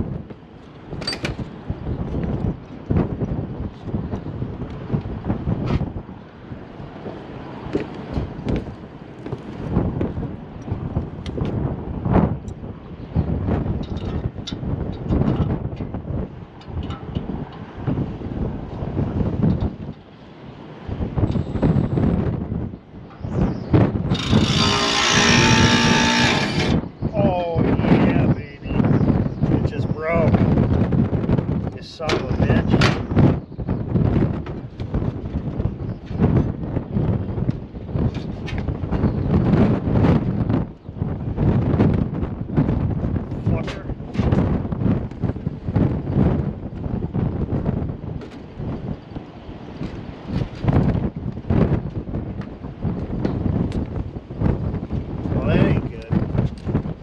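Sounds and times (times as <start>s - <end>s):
wind gusting on microphone: 0.0s - 57.0s
cordless driver running: 24.1s - 26.8s
short squeaks: 24.1s - 26.8s.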